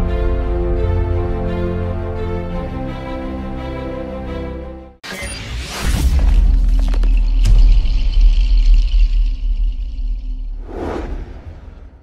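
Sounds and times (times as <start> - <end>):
whoosh: 10.5 - 12.0.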